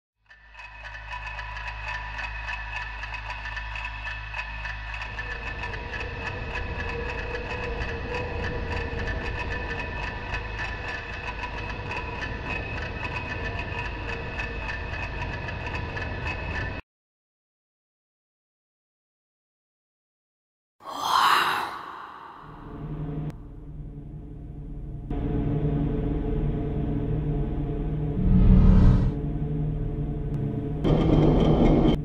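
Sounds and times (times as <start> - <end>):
droning ambient soundtrack: 0.3 - 16.8, 21.0 - 32.0.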